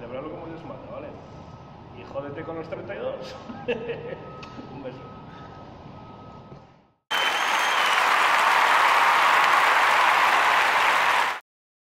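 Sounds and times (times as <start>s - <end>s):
crowd applause: 7.1s - 11.4s
high whistle: 7.1s - 11.4s.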